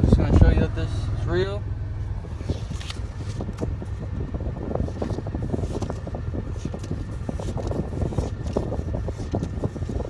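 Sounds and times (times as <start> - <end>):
car low rumble: 0.0 - 10.0.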